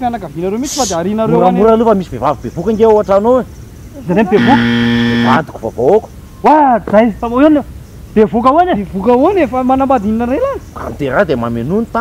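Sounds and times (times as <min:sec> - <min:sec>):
low electronic buzzer: 0:04.3 - 0:05.5.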